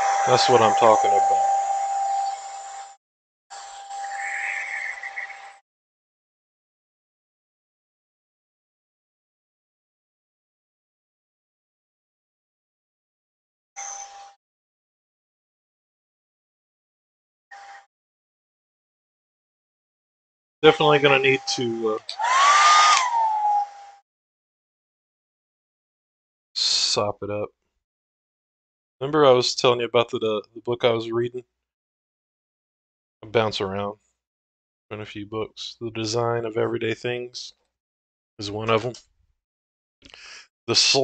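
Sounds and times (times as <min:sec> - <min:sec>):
hair dryer blowing: 0:22.1 - 0:23.9.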